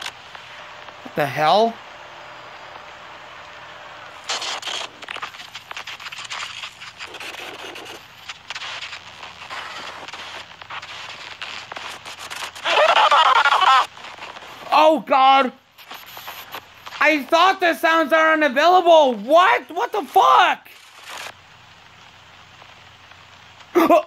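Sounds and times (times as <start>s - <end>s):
crackling with clicks and pops: 0.0s - 24.0s
tape hiss: 0.0s - 24.0s.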